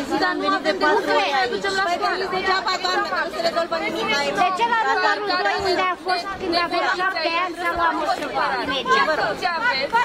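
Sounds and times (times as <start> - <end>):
women arguing: 0.0 - 10.0.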